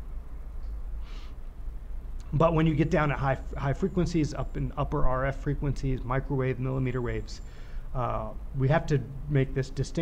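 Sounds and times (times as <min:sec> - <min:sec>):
low steady background hum: 0:00.0 - 0:10.0
soft breath hiss: 0:00.0 - 0:10.0.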